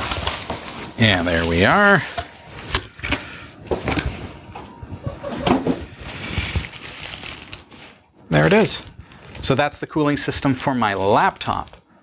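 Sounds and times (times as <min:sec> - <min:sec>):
bubble wrap crinkling: 0:00.0 - 0:04.3, 0:05.8 - 0:11.9
plastic bag rustling: 0:00.0 - 0:04.6, 0:05.3 - 0:12.0.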